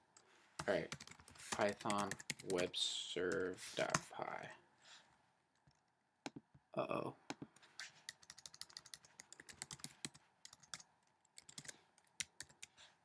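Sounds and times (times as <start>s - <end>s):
computer keyboard typing: 0.6s - 2.7s, 7.3s - 12.7s.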